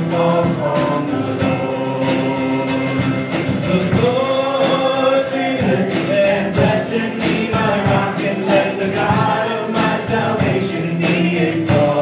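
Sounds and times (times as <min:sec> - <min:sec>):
guitar: 0:00.0 - 0:12.0
keyboard: 0:00.0 - 0:12.0
people singing: 0:00.0 - 0:12.0
steady drum beat: 0:00.0 - 0:12.0.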